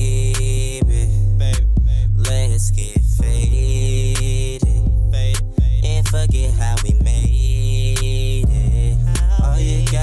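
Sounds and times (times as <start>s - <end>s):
heavy sub-bass: 0.0s - 10.0s
instrumental hip hop beat: 0.0s - 10.0s.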